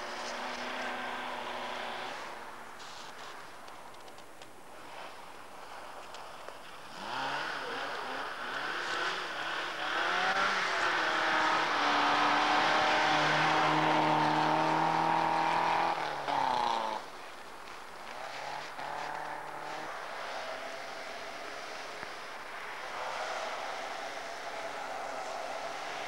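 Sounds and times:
rally car engine revving: 0:00.0 - 0:03.1, 0:06.6 - 0:26.0
second car engine: 0:06.0 - 0:26.0.

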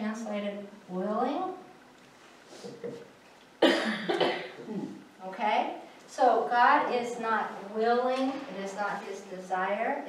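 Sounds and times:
person coughing: 0:03.6 - 0:05.0.

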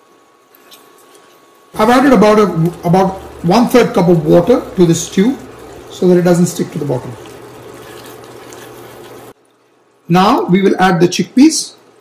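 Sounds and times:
stew simmering and bubbling: 0:00.5 - 0:10.6
spatula moving through stew: 0:00.6 - 0:10.1.

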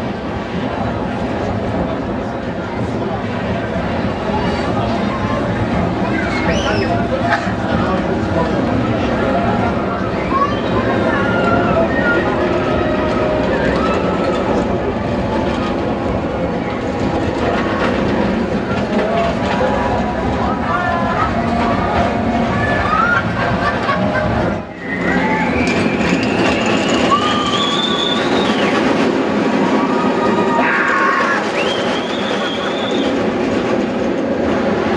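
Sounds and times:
crowd noise: 0:00.0 - 0:34.9
roller coaster rumbling on track: 0:00.0 - 0:34.9.

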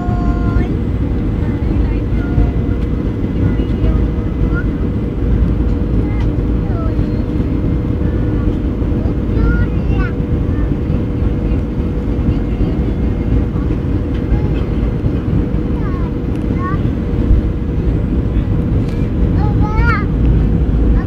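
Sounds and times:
jet airliner engines rumbling: 0:00.0 - 0:21.0.

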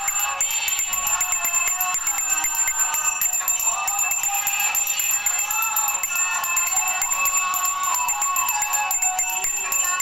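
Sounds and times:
hand bell rung rapidly: 0:00.0 - 0:10.0.

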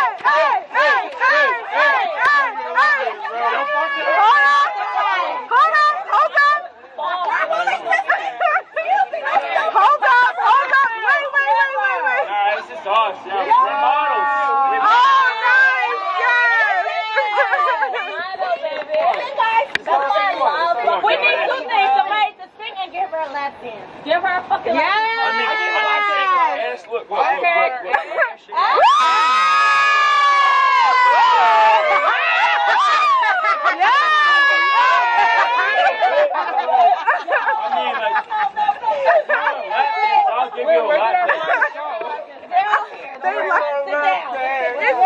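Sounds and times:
group chatter of women's voices: 0:00.0 - 0:45.0.

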